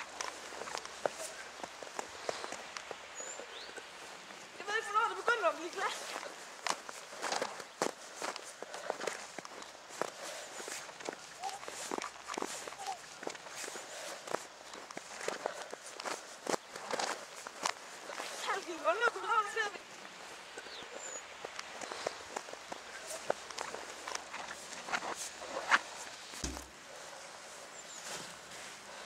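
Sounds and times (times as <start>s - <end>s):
footsteps crunching in snow: 3.8s - 20.4s, 21.6s - 29.0s.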